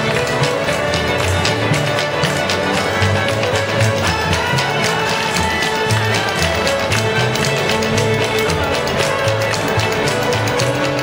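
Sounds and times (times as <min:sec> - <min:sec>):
fiddles playing together: 0:00.0 - 0:11.0
percussive beat: 0:00.0 - 0:11.0
strummed guitars: 0:00.0 - 0:11.0.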